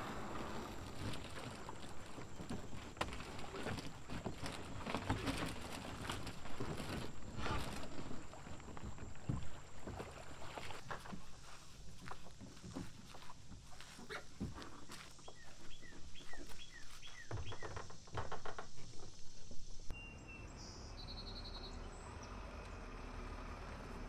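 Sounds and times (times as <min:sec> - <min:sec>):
kayaks and paddles clattering: 0:00.0 - 0:19.9.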